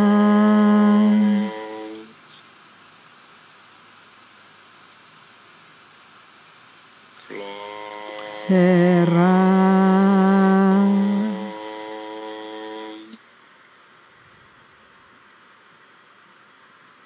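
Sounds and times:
person humming low tone: 0.0s - 2.2s, 7.2s - 13.2s
faint hiss: 0.0s - 17.0s.

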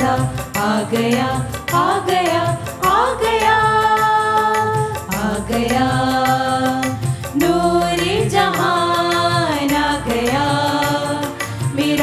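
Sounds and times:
group singing a hymn: 0.0s - 12.0s
keyboard with steady beat: 0.0s - 12.0s.

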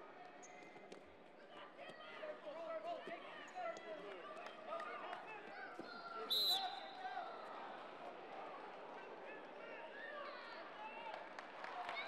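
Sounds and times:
hubbub of many voices: 0.0s - 12.0s.

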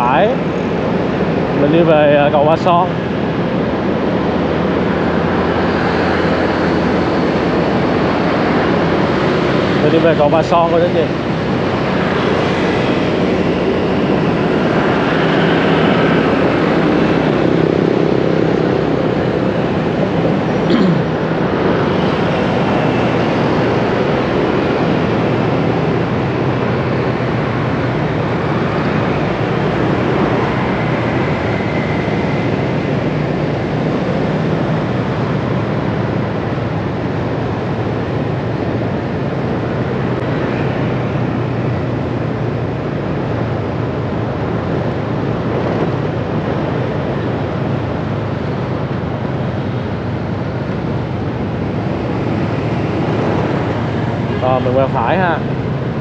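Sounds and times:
motorbike traffic: 0.0s - 56.0s
road and wind noise: 0.0s - 56.0s.

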